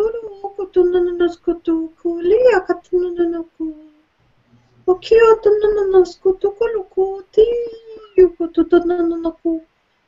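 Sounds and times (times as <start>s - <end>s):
woman chanting: 0.0s - 4.0s, 4.8s - 9.7s.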